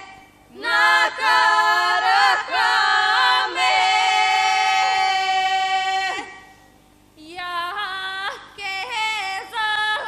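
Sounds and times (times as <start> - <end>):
women singing sustained note: 0.0 - 6.5.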